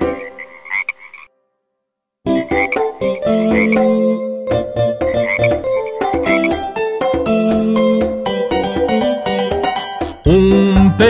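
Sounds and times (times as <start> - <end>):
cartoon frog croaks: 0.2 - 1.3, 3.5 - 3.9.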